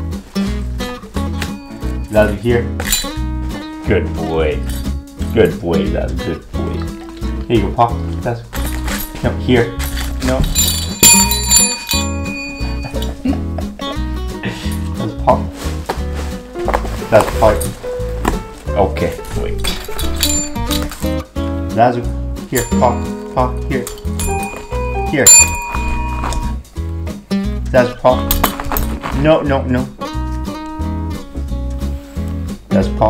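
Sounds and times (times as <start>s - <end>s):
desk bell ringing: 1.0s - 3.3s, 10.5s - 13.8s, 20.0s - 21.1s, 22.5s - 26.7s.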